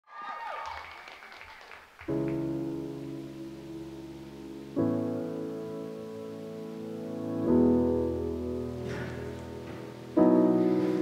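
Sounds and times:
falling whoop: 0.0s - 1.2s
audience applause: 0.0s - 2.6s.

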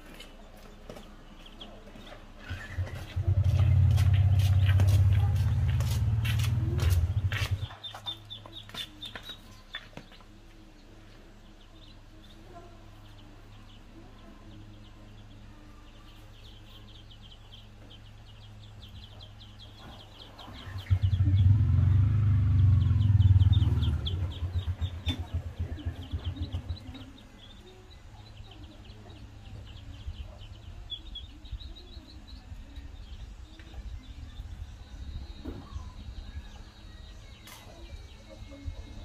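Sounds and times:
chickens clucking: 0.0s - 13.9s, 22.8s - 31.6s
chicks peeping: 0.0s - 39.0s
small engine running: 2.4s - 7.7s, 20.6s - 27.6s
high chirping of birds or insects: 6.9s - 39.0s.

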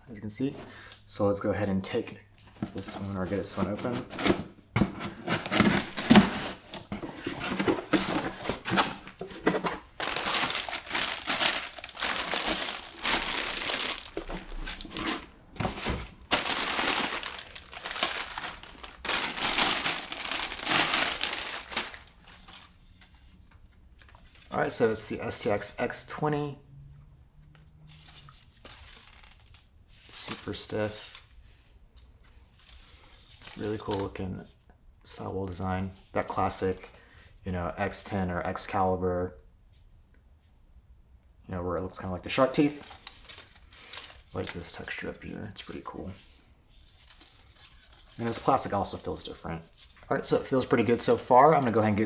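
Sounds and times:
cardboard box flaps rustling: 3.6s - 21.9s
plastic bag crinkling: 5.3s - 22.8s, 28.3s - 29.7s, 42.6s - 45.1s.

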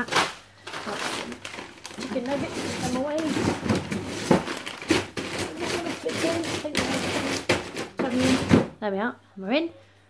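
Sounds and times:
frozen packets knocking: 0.0s - 8.8s.

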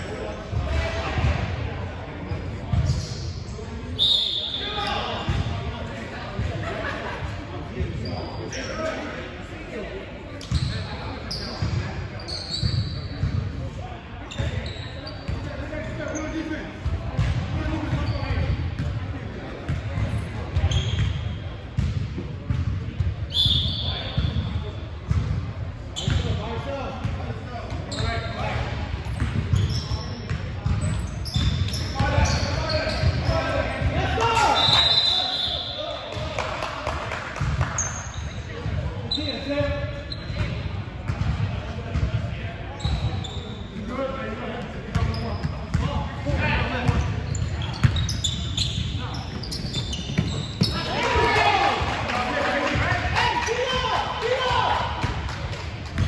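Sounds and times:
sneaker squeaks: 2.3s - 5.7s, 7.8s - 9.1s, 10.4s - 13.5s, 14.2s - 18.9s, 19.6s - 21.9s, 23.3s - 25.2s, 25.9s - 26.6s, 27.8s - 36.4s, 37.4s - 44.0s, 44.6s - 51.6s.

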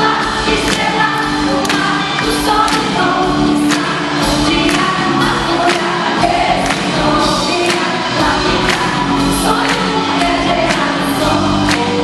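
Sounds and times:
live band with singing: 0.0s - 12.0s.

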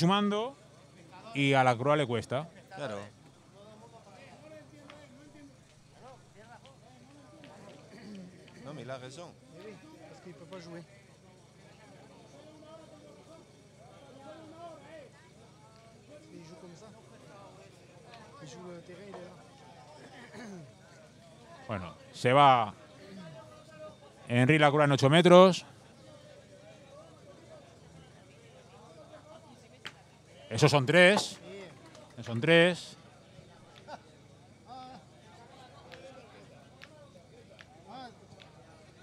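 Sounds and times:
faint people talking: 0.0s - 39.0s
murmur of distant voices: 0.0s - 39.0s.

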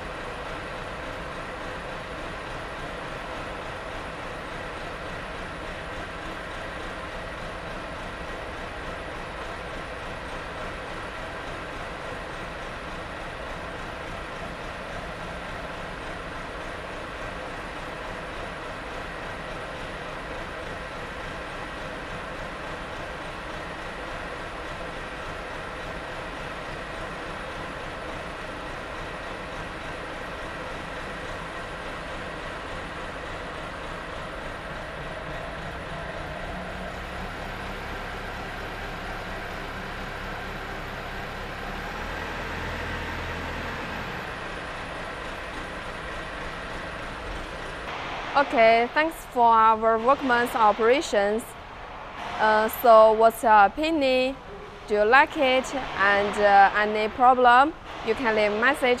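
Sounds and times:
backhoe engine and hydraulics: 0.0s - 59.0s.

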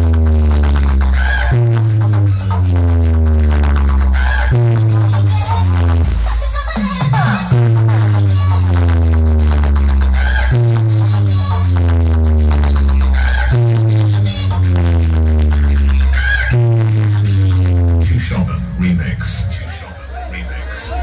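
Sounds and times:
heavy bass note: 0.0s - 19.9s
loud dance music: 0.0s - 21.0s.

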